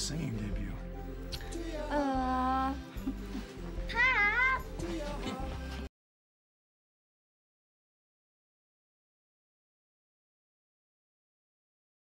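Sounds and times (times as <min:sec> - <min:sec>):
soft background music: 0:00.0 - 0:05.9.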